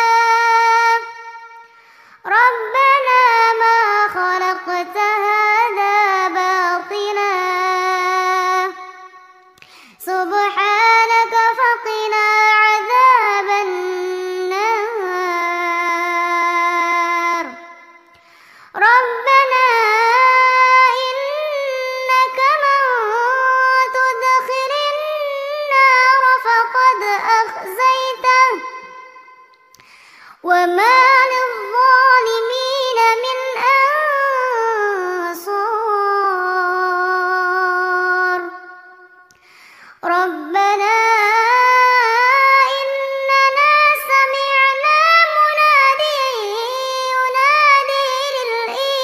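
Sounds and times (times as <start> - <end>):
girl reciting in melodic chant: 0.0 - 17.9, 18.8 - 29.5, 30.4 - 39.2, 40.0 - 49.0
breaths between phrases: 1.6 - 2.3, 9.5 - 10.0, 18.1 - 18.8, 29.7 - 30.5, 39.3 - 40.0.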